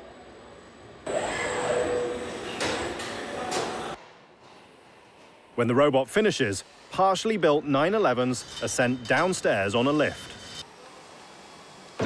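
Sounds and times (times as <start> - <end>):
machine whine with hiss: 0.0 - 4.0, 6.1 - 12.0.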